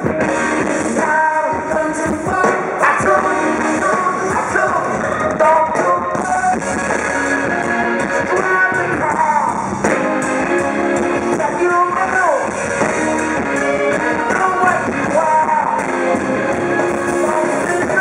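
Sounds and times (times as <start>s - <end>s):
man singing lead vocal: 0.0s - 6.6s, 7.9s - 9.9s, 11.2s - 18.0s
rock band playing: 0.0s - 18.0s.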